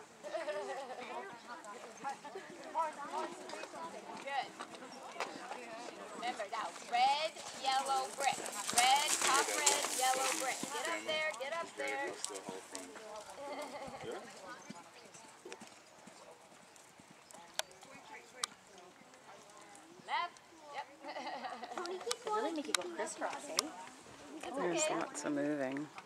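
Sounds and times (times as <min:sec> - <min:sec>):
horse hoofbeats on sand: 0:02.0 - 0:18.0.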